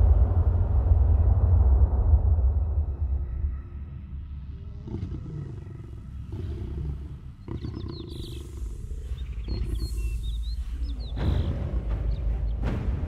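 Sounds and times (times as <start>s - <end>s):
deep continuous rumble: 0.0s - 13.0s
large animal roaring: 4.6s - 9.9s
bird-like chirps: 5.4s - 12.9s.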